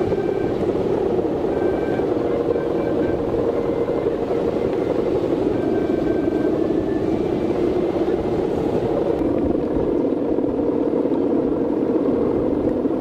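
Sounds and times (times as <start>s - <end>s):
kite hummer droning: 0.0s - 13.0s.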